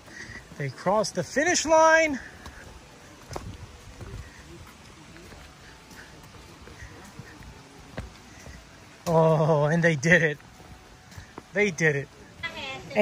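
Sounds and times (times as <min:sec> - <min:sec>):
faint voices: 0:00.0 - 0:13.0
footsteps on rocky dirt trail: 0:00.0 - 0:13.0.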